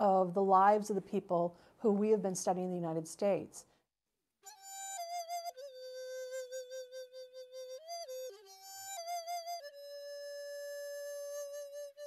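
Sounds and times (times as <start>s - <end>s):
flute holding a long note: 4.5s - 12.0s.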